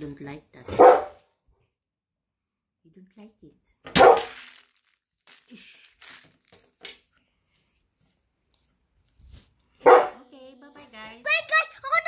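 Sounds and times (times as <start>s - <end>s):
dog barking loudly: 0.7s - 1.2s, 9.8s - 10.2s.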